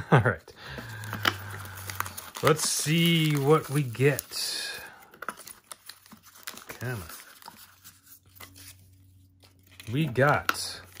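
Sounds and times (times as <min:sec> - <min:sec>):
packing paper rustling and crinkling: 0:00.6 - 0:11.0.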